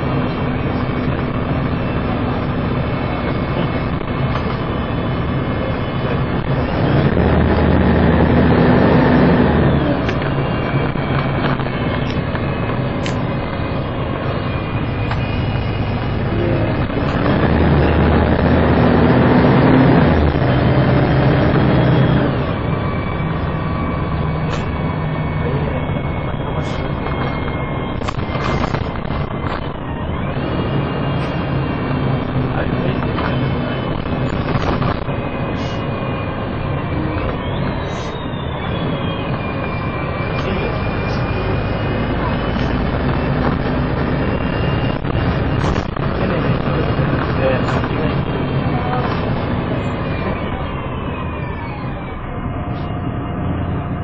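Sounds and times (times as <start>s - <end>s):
bus diesel engine: 0.0s - 54.0s
high whine sliding in pitch: 0.0s - 54.0s.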